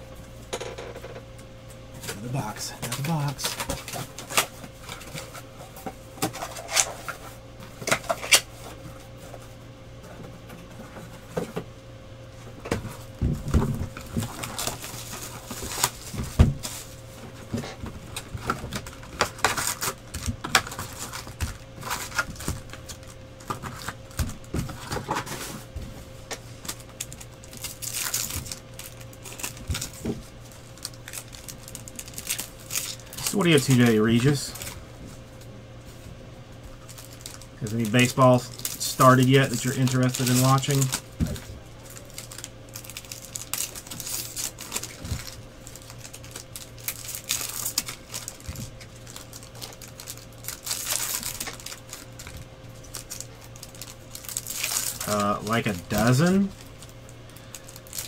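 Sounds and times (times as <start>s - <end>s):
faint hum: 0.0s - 58.0s.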